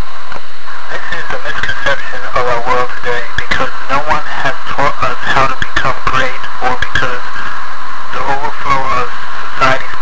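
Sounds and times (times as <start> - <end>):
steady hiss: 0.0 - 10.0
loud voice: 0.9 - 7.4.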